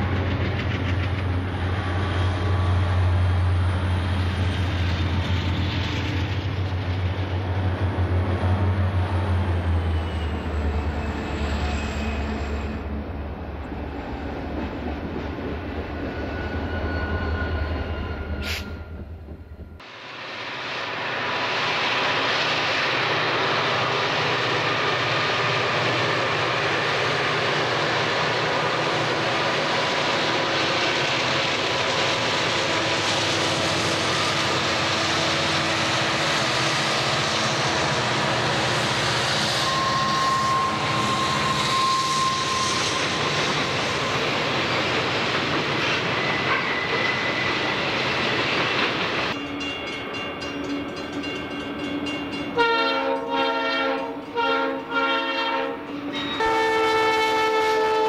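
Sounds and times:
diesel locomotive engine drone: 0.0 - 58.0.

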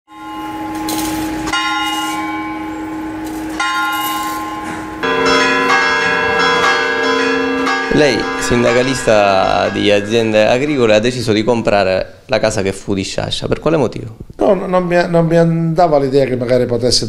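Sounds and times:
church bells ringing: 0.1 - 11.9.

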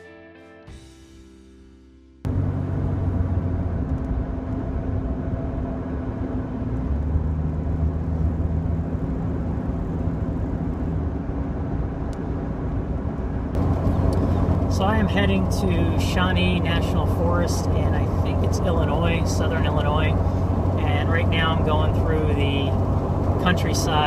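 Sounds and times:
car engine drone: 2.2 - 24.0
road noise: 2.3 - 24.0.

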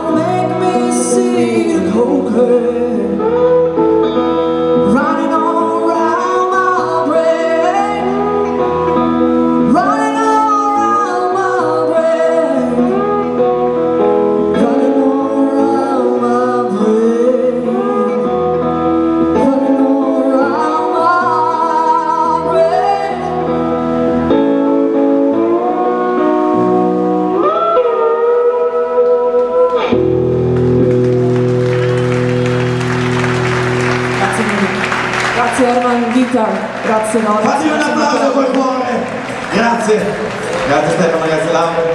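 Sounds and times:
woman singing blues: 0.0 - 30.3
lap steel guitar: 0.0 - 41.9
audience applause: 30.5 - 41.9.

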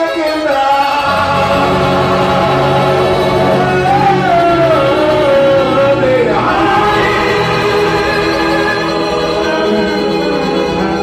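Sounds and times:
band accompaniment: 0.0 - 11.0
men singing: 0.0 - 11.0.

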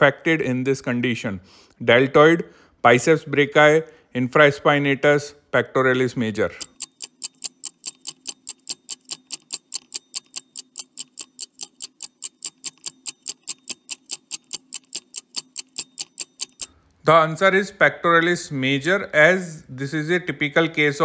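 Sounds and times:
fast timer ticking: 6.5 - 16.8.

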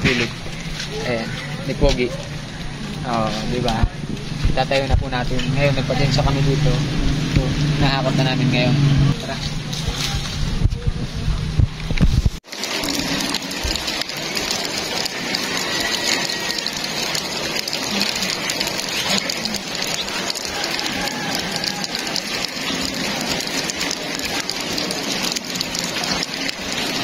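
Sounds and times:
low rumbling on microphone: 0.0 - 12.4
rain falling: 5.3 - 27.0.

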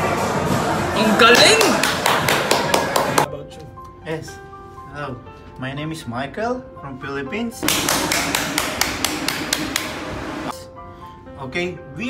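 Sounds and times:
hands clapping: 1.2 - 3.3, 7.6 - 10.2.

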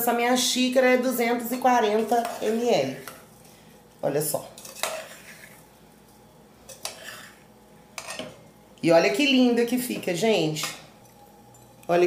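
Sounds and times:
spoon scraping a pan: 1.8 - 3.3, 4.4 - 5.7, 6.6 - 8.4.

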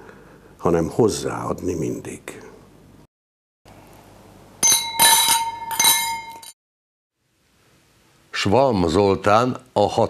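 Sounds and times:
quick bright clinks: 4.6 - 6.6.

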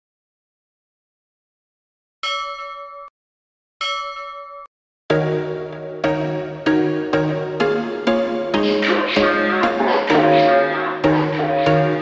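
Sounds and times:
bell-like ding: 2.2 - 3.2, 3.8 - 4.7.

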